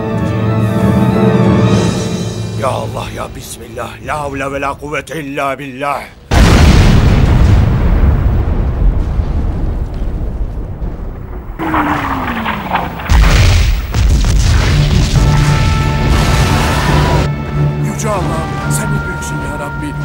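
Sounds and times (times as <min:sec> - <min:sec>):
shell explosion: 0:06.3 - 0:16.8
cannon firing boom: 0:06.3 - 0:16.9.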